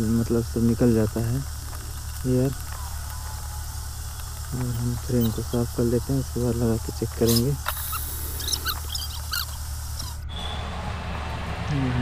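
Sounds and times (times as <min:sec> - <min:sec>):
faint thin high whine: 0:00.0 - 0:12.0
low hum: 0:00.0 - 0:12.0.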